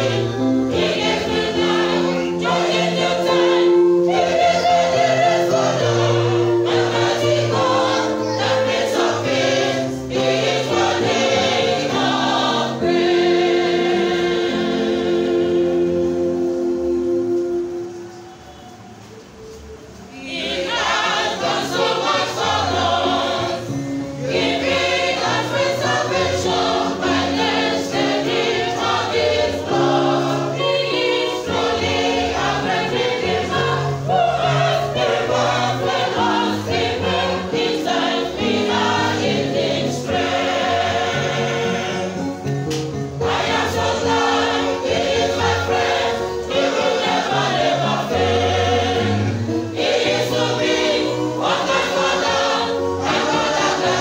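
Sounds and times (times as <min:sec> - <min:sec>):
choir singing gospel: 0:00.0 - 0:54.0.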